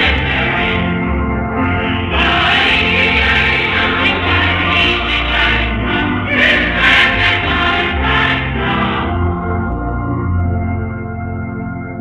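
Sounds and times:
choir singing a hymn: 0.0 - 9.4
accompaniment chords: 0.0 - 12.0.

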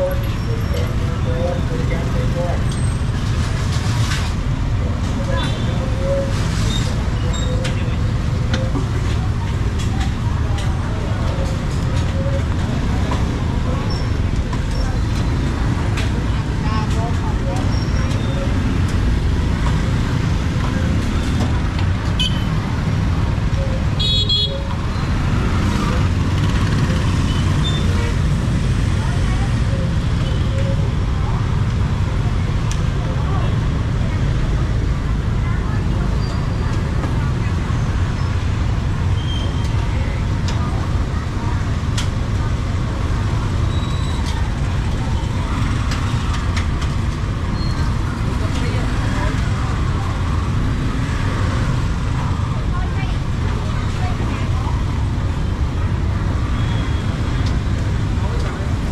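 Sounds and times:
indistinct voices: 0.0 - 3.4, 4.1 - 58.9
motorbike and traffic noise: 0.0 - 58.9.

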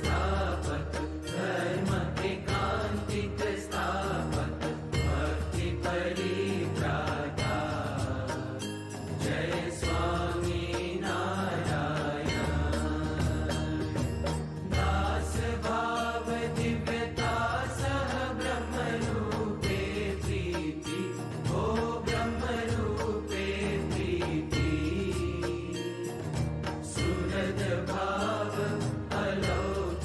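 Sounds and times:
devotional chant singing: 0.0 - 30.0
sharp percussive strokes: 0.0 - 30.0.

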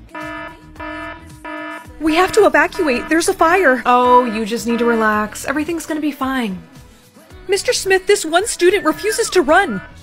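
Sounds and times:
fire alarm buzzing beeps: 0.2 - 5.2, 8.8 - 10.0.

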